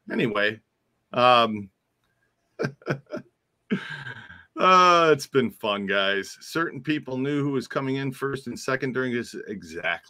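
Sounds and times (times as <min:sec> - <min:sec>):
man laughing: 0:02.6 - 0:05.2.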